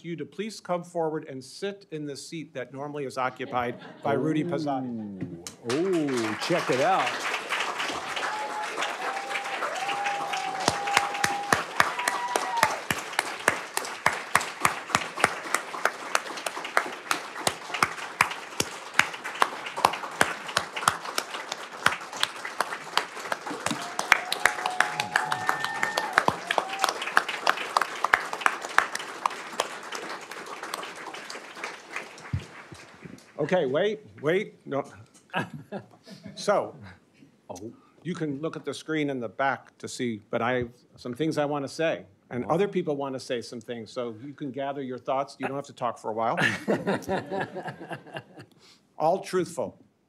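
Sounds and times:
crowd applauding: 5.4s - 33.7s, 46.6s - 48.4s.

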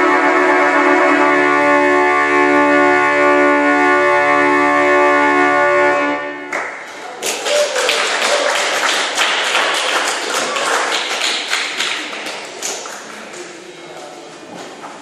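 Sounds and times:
audience clapping: 6.5s - 14.2s.

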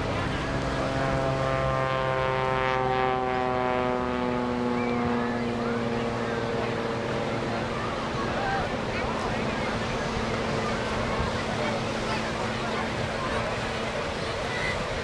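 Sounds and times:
propeller plane droning overhead: 0.0s - 15.0s.

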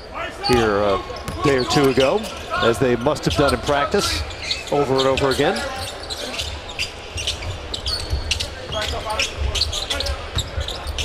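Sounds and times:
sneaker squeaks on floor: 0.5s - 11.0s.

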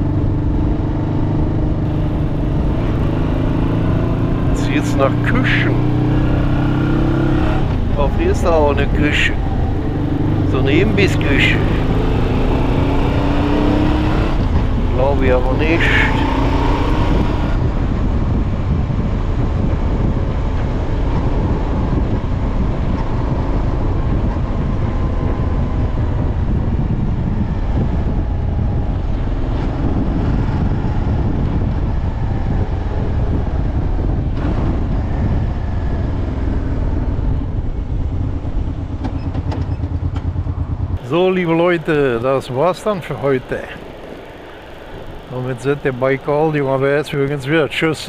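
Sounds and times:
motorcycle engine: 0.0s - 48.0s
road rumble: 0.0s - 48.0s
wind rush: 0.0s - 48.0s.

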